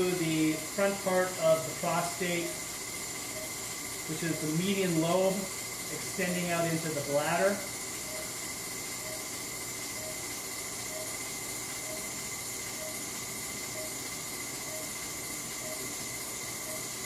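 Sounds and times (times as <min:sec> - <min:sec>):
steady hiss with high whine: 0:00.0 - 0:17.0.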